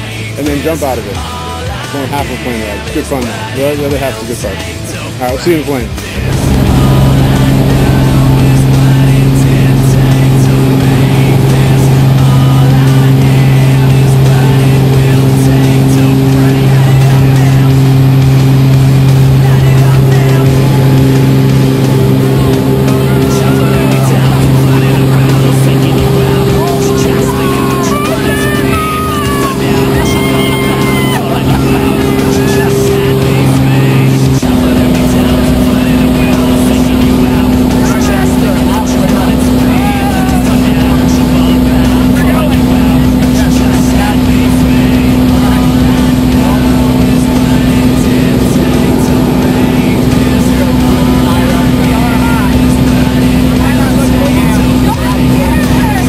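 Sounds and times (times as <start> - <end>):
plane engine and propeller droning: 0.0 - 56.0.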